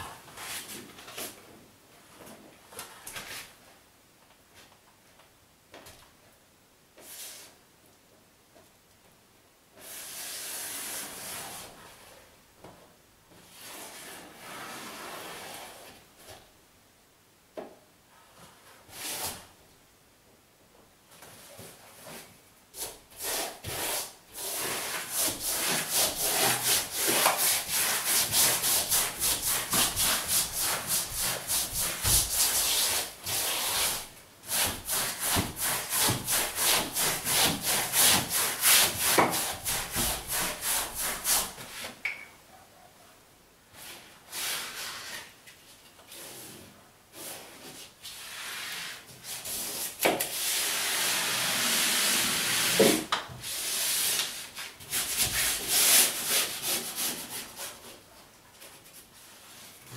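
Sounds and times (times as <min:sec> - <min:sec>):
brush rubbing over wallpaper: 0:13.4 - 0:16.0, 0:21.4 - 0:42.0, 0:46.1 - 0:52.8, 0:53.4 - 0:59.9.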